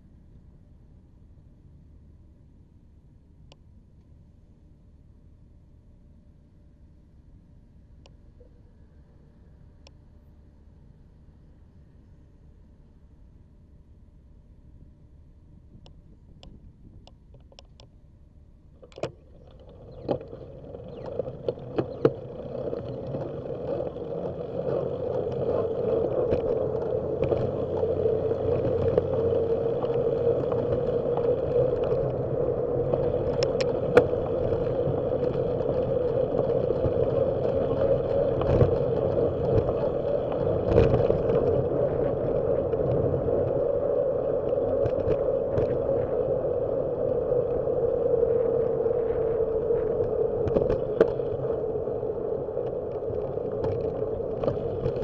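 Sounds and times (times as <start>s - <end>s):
wind noise: 18.8s - 55.0s
bicycle tyre noise: 18.9s - 55.0s.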